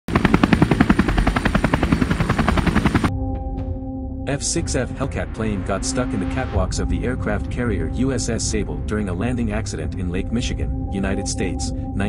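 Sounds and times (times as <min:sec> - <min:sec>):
fast chopping pulses: 0:00.1 - 0:03.1
low musical drone: 0:00.9 - 0:12.0.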